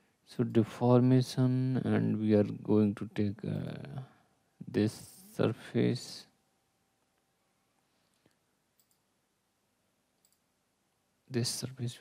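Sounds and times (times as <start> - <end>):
computer mouse clicks: 8.2 - 9.1, 10.2 - 10.5.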